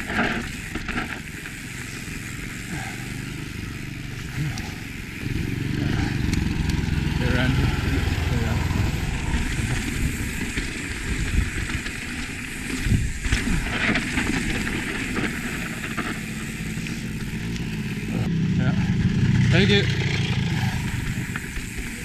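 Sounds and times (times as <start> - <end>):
bike rattling and knocking: 0.0 - 22.0
bike tyres rolling on dirt: 0.0 - 22.0
wind on microphone: 8.1 - 11.9, 12.7 - 15.6.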